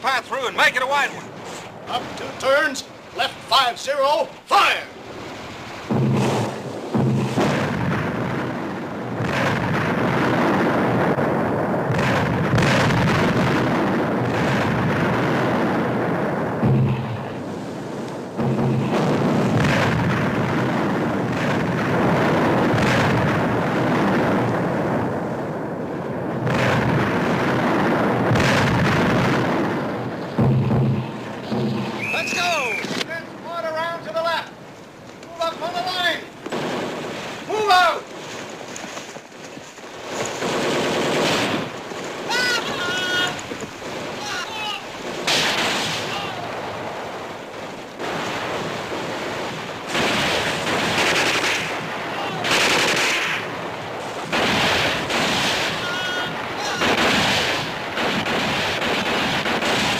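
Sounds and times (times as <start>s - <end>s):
mortar shell bursts rumbling: 5.2s - 25.3s, 26.2s - 33.1s, 33.7s - 59.9s.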